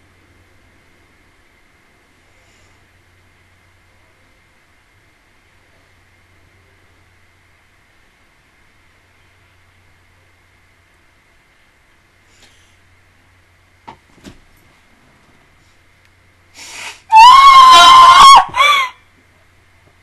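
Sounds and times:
woman shrieking: 16.8 - 19.0.

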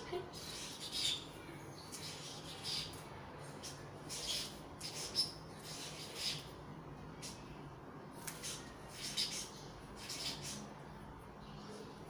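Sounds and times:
marker squeaking on paper: 0.3 - 1.2, 2.0 - 3.0, 3.6 - 6.5, 8.3 - 10.7.

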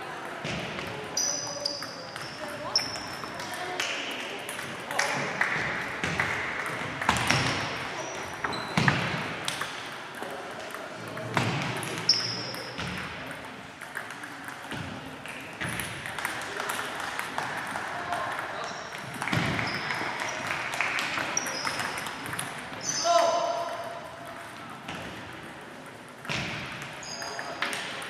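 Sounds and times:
hubbub of voices: 0.0 - 28.0
ping pong balls clicking: 0.2 - 28.0
short high squeaks: 27.0 - 27.6.

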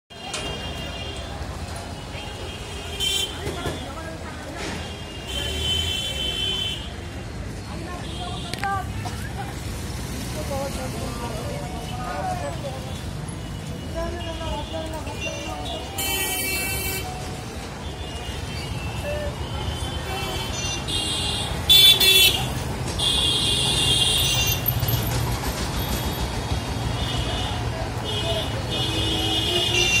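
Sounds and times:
traffic engine rumble: 0.1 - 30.0
voices of passers-by: 0.1 - 30.0.

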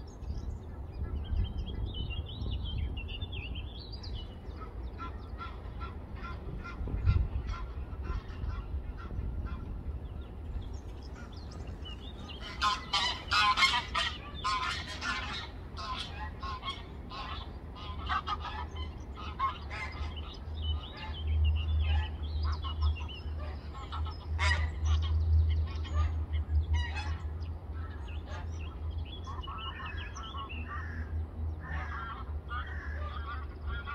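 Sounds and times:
steady low rumble: 0.0 - 33.9
geese honking: 4.5 - 9.8, 10.8 - 33.9.

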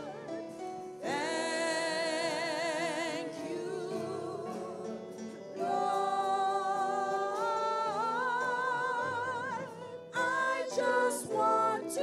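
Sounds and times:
keyboard accompaniment: 0.0 - 12.0
woman singing gospel song: 1.0 - 12.0.

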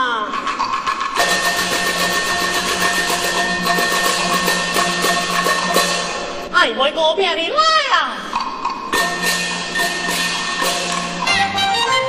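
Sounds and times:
rapid percussion strokes: 0.0 - 6.6, 8.3 - 12.0
instruments holding pitches: 9.0 - 12.0.

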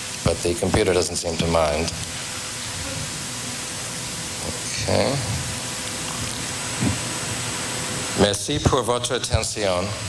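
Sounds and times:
recording hiss: 0.0 - 10.0.

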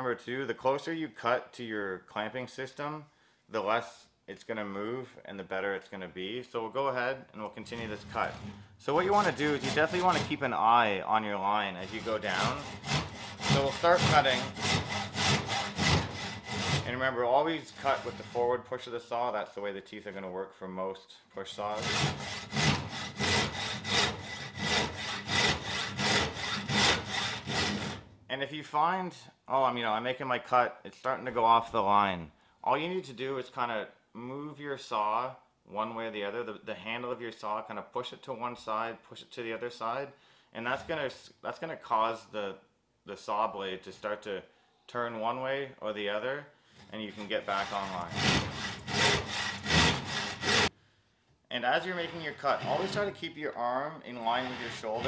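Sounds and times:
hand saw cutting wood: 7.6 - 10.5, 11.8 - 18.7, 21.6 - 28.1, 46.8 - 50.8, 51.8 - 53.3, 54.1 - 55.0.

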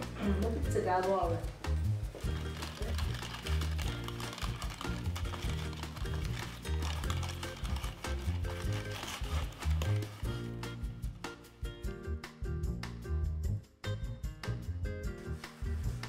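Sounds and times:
instrumental background music: 0.0 - 16.0.

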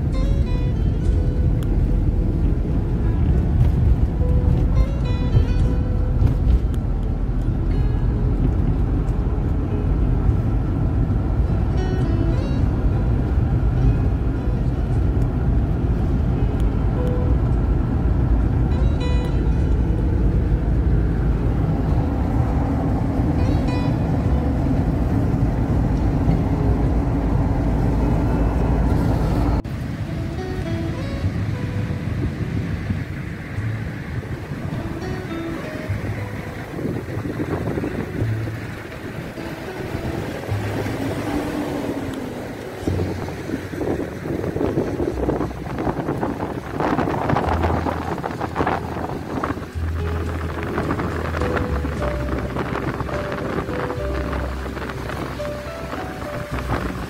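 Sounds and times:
car road and engine noise: 0.0 - 57.0
music playing: 0.0 - 57.0.

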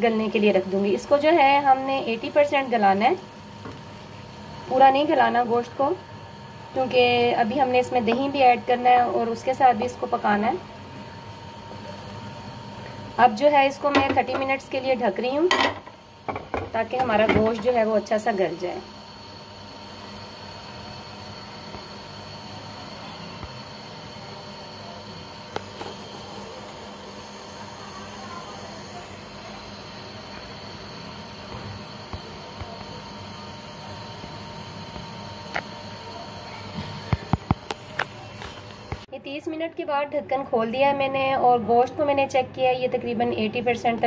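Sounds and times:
pan simmering on gas burner: 0.1 - 39.1.

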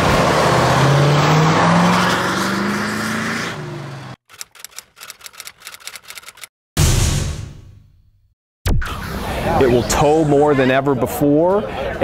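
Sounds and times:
typewriter-like key clicks: 4.3 - 6.5.

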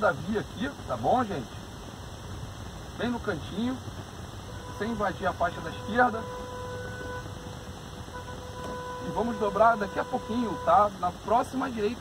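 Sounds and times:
idling engines rumble: 0.0 - 12.0.

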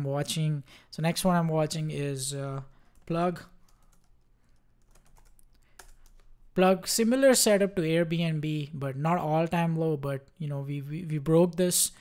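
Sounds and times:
computer keyboard clicks: 3.0 - 6.3.

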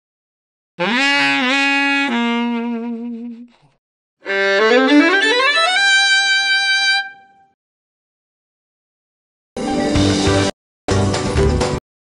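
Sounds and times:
saxophone phrase: 0.8 - 3.5.

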